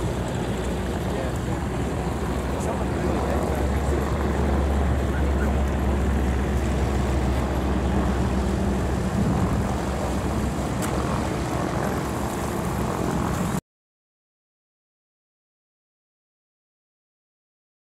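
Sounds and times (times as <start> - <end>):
propeller aircraft engine drone: 0.0 - 13.6.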